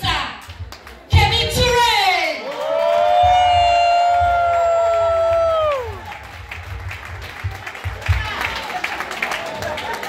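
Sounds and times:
audience cheering: 2.4 - 10.0
long high shout: 2.5 - 6.0.

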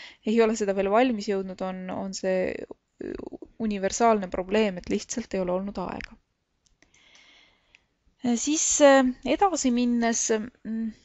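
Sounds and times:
low hiss: 0.0 - 11.0.

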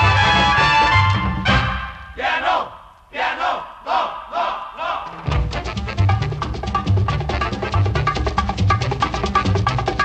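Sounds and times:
background music: 0.0 - 2.4, 4.5 - 10.0
group chanting rhythmic shouts: 2.2 - 5.2.

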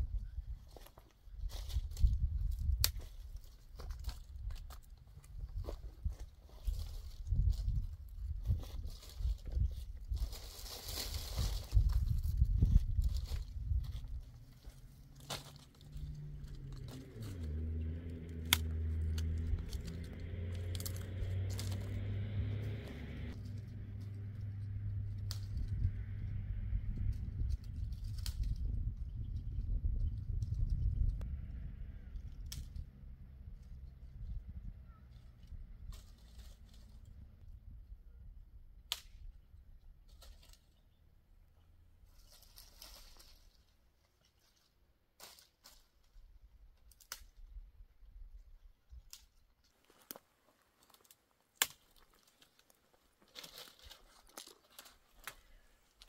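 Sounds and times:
twigs snapping and leaves rustling: 0.7 - 31.1, 32.0 - 32.9, 38.9 - 39.4, 40.0 - 40.8, 42.1 - 47.6, 48.9 - 56.0
wind buffeting microphone: 1.4 - 3.0, 5.3 - 10.5, 11.1 - 14.6, 24.7 - 32.9.

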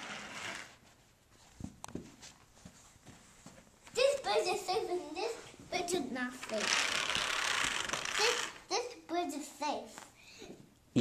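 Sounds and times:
soft rustling: 0.5 - 4.0.

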